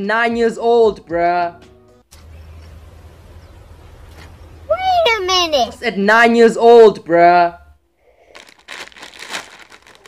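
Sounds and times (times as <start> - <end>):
plastic snack bag crinkling: 8.2 - 10.0.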